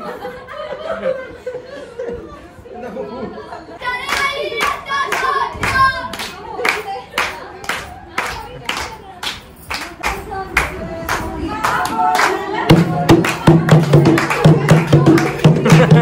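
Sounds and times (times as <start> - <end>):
voices calling and singing: 3.3 - 16.0
people clapping in unison: 4.0 - 16.0.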